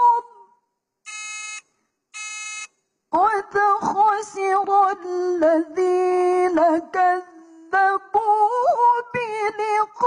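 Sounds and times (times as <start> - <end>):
woman reciting: 0.0 - 0.7, 3.1 - 10.0
electronic buzzer beep: 1.1 - 2.8.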